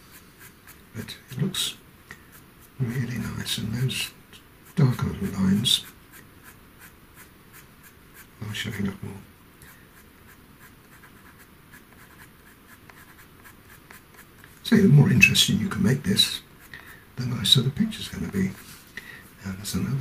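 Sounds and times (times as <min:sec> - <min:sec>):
pencil scratching on paper: 0:00.0 - 0:01.4, 0:02.3 - 0:03.6, 0:04.6 - 0:08.8, 0:09.7 - 0:14.5, 0:16.6 - 0:17.0.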